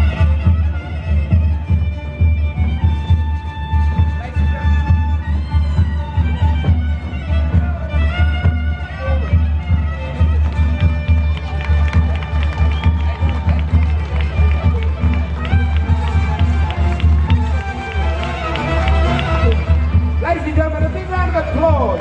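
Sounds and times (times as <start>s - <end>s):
folk dance music: 0.0s - 22.0s.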